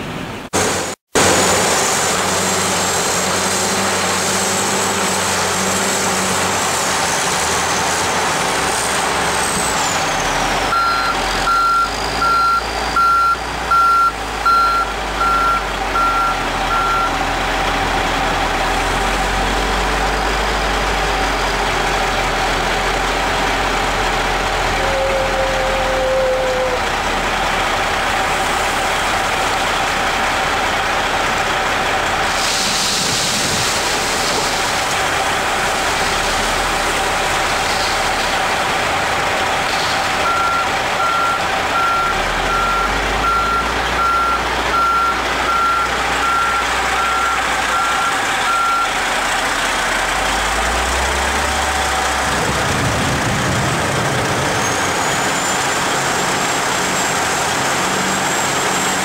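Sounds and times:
heavy truck engine rumble: 0.0s - 59.0s
reversing alarm beeps: 10.7s - 17.2s, 40.2s - 48.9s.

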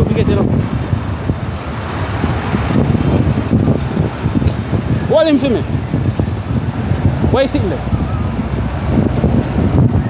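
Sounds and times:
traffic noise: 0.0s - 10.0s
wind rumble on microphone: 0.0s - 10.0s.

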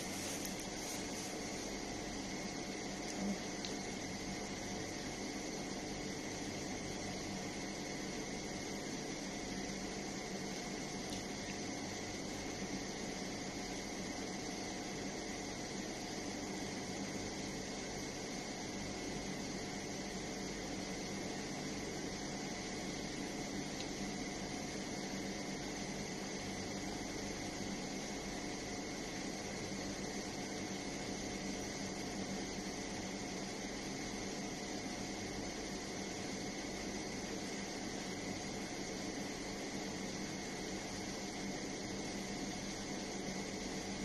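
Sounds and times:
fan hum with hiss: 0.0s - 44.0s.

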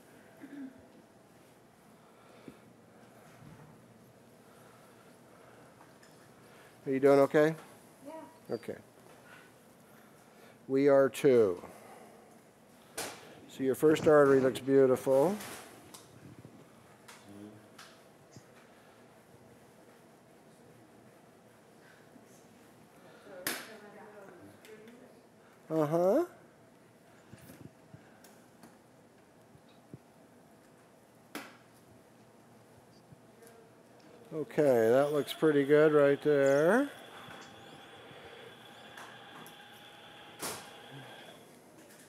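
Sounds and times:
faint high equipment whine: 0.0s - 42.0s
short sharp noise burst: 34.7s - 41.4s.

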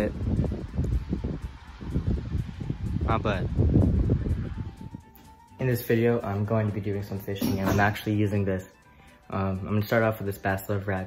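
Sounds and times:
wind buffeting microphone: 0.0s - 5.2s.

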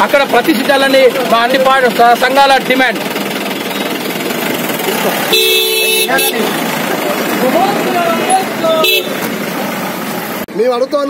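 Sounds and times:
crowd voices: 0.0s - 10.5s
vehicle horn honking: 5.2s - 9.4s.

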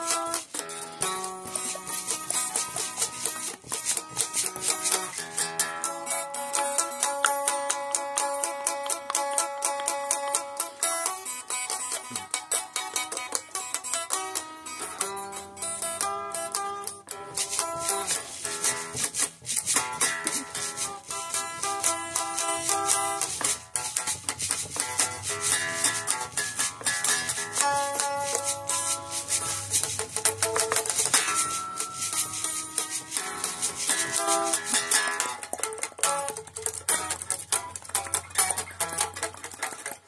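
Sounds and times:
unplugged electric guitar strumming: 0.0s - 40.0s.

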